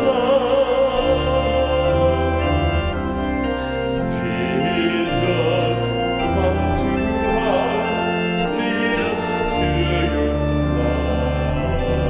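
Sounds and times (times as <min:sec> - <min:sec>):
church organ playing chords: 0:00.0 - 0:12.0.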